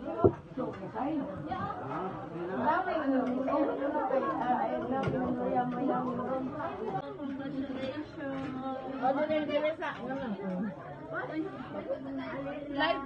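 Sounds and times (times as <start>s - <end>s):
people chatting: 0.0s - 13.0s.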